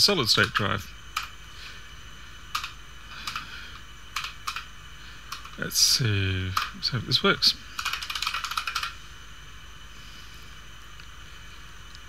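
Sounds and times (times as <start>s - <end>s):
faint low hum: 0.0s - 12.0s
steady background hiss: 0.0s - 12.0s.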